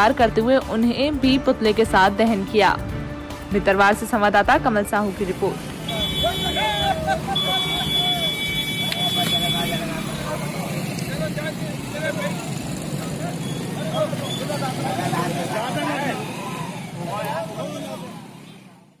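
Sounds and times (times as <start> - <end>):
road traffic noise: 0.0 - 19.0
men talking at once: 6.0 - 18.4.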